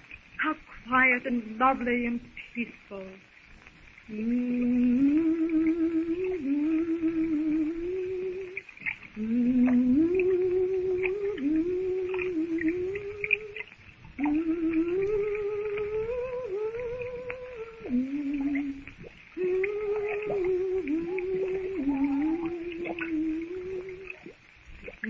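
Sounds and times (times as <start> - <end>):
woman humming: 4.1 - 25.0.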